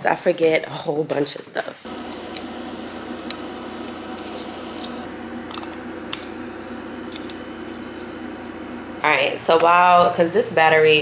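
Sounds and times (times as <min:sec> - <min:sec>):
steady electrical hum: 0:01.8 - 0:11.0.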